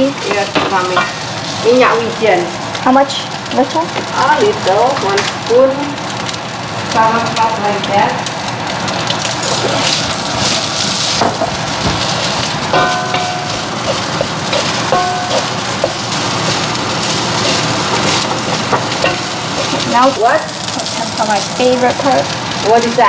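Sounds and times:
rice sizzling in a wok: 0.0 - 23.0
wooden spatula scraping pan: 11.9 - 21.0.

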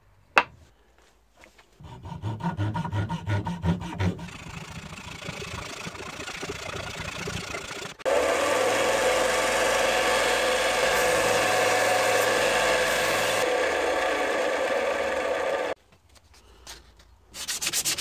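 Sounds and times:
belt sander grinding wood: 1.8 - 15.8
hand sawing wood: 1.8 - 15.8, 17.4 - 18.0.

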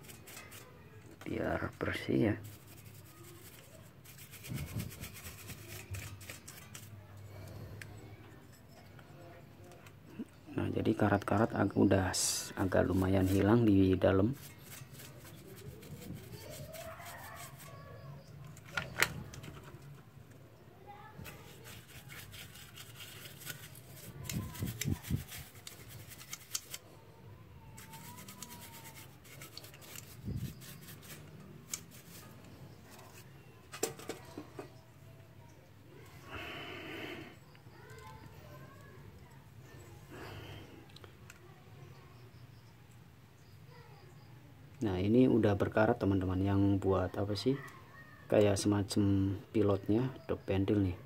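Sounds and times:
brush scrubbing metal: 0.0 - 6.9, 12.2 - 18.0, 21.2 - 26.8, 27.7 - 34.2.

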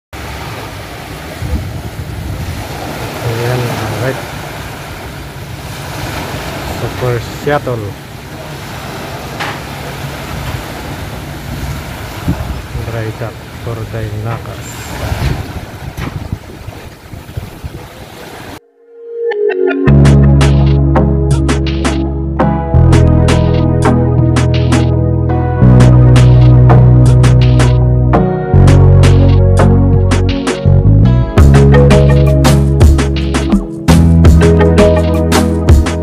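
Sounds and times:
wind and sea noise: 0.2 - 19.0.

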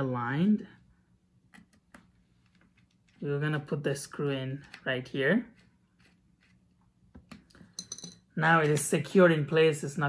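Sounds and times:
screwdriver metallic clink: 7.8 - 8.2.

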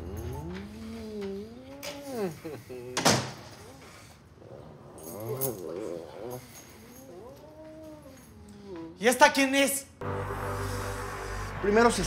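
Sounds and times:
kissing: 1.1 - 3.0
front door opening: 2.9 - 4.0.

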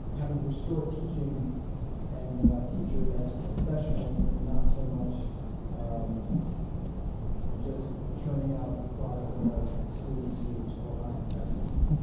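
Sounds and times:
steady low rumble: 0.0 - 12.0
man talking at a distance: 2.2 - 6.4, 7.6 - 11.7.

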